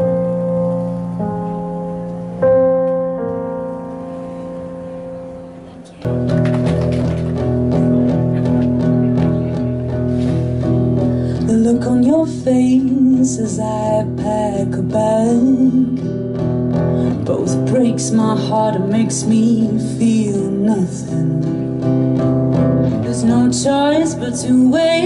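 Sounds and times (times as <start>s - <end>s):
acoustic guitar strumming: 6.0s - 25.0s
woman singing: 11.4s - 16.2s, 17.1s - 21.7s, 22.8s - 25.0s.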